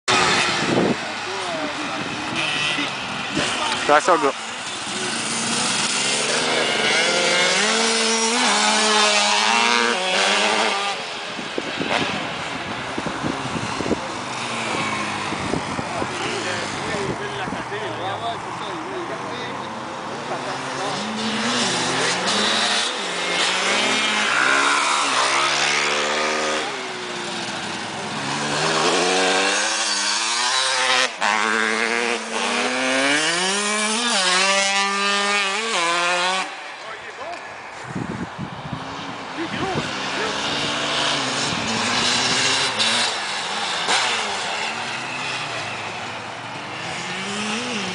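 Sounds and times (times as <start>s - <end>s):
dirt bike engines revving: 0.0s - 47.9s.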